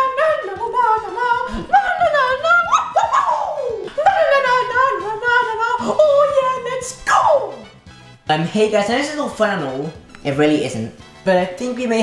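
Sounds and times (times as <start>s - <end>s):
high voice singing: 0.0s - 7.7s.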